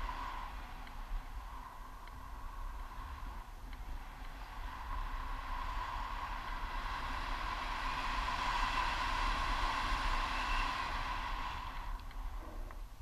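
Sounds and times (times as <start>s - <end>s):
wind rushing over microphone: 0.0s - 13.0s.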